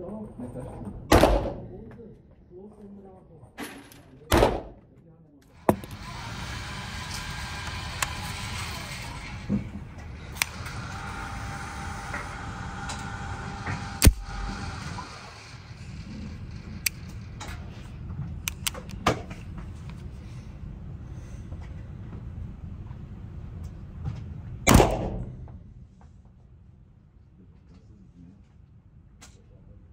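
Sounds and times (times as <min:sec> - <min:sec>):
sharp clicks: 0:14.0 - 0:14.3, 0:18.4 - 0:19.0.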